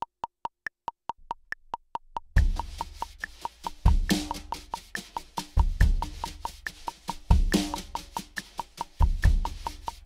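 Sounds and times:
metronome clicking: 0:00.0 - 0:10.0.

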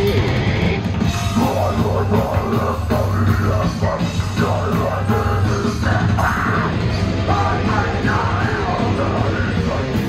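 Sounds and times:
bass guitar: 0:00.0 - 0:10.0
drum kit: 0:00.0 - 0:10.0
electric guitar: 0:00.0 - 0:10.0.

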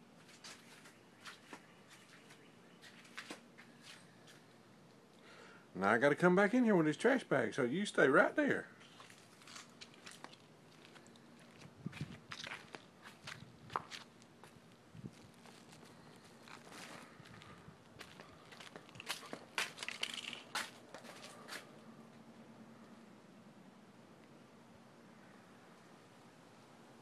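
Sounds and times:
footsteps on dry leaves: 0:08.8 - 0:21.7.

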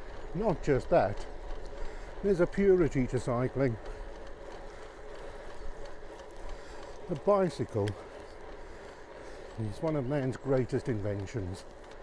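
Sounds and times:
bike tyres on wet tarmac: 0:00.0 - 0:12.0.

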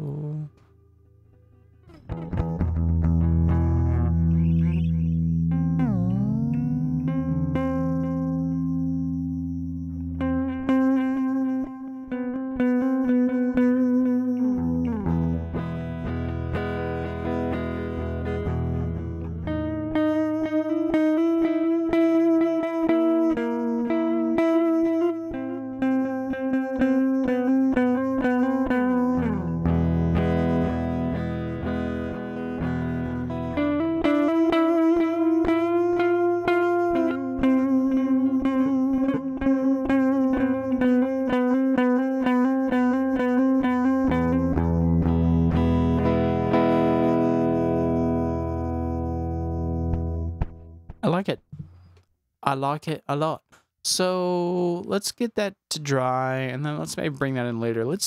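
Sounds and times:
electric guitar with delay echo: 0:01.5 - 0:51.0.

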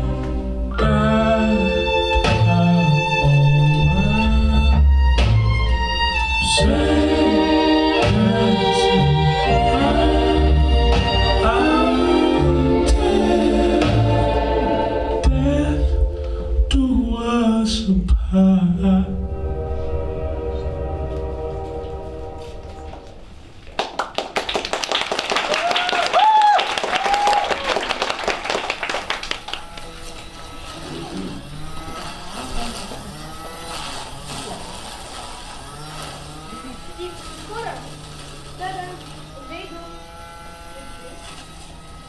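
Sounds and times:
held closing chord of song: 0:06.2 - 0:17.4
audience applause: 0:23.6 - 0:30.3
soft voices: 0:30.6 - 0:40.1.

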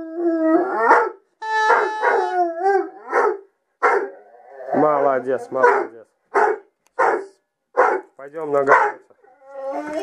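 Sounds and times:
dog barking: 0:00.8 - 0:02.3, 0:03.1 - 0:04.1, 0:05.6 - 0:08.1, 0:08.7 - 0:09.0.

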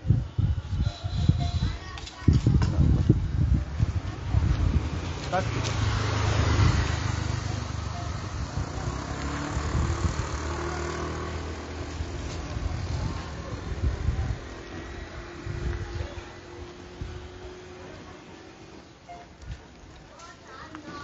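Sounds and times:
vehicle engine rumbling: 0:00.0 - 0:21.0.

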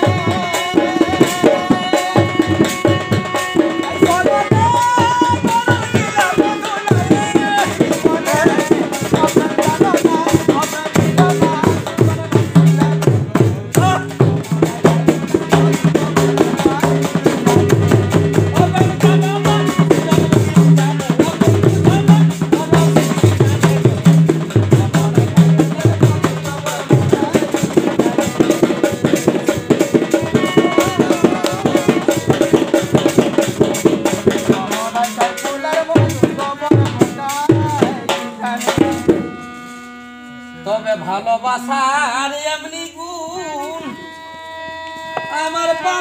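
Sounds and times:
harmonium held notes: 0:00.0 - 0:13.3, 0:37.9 - 0:41.8, 0:43.3 - 0:46.0
fast hand drum strokes: 0:00.0 - 0:40.4.

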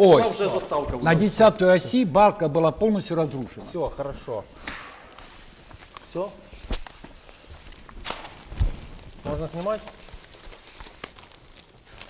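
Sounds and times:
footsteps on studio floor: 0:05.7 - 0:11.1.

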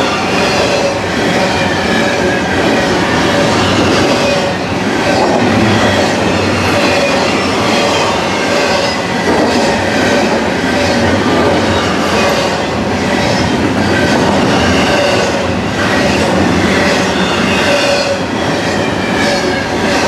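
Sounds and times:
train wheels rolling on rail: 0:00.0 - 0:20.0
wheels squealing: 0:00.0 - 0:20.0.

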